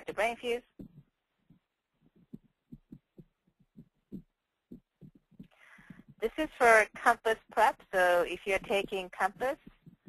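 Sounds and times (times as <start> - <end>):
faint low thuds: 0.6 - 7.2, 8.4 - 10.0.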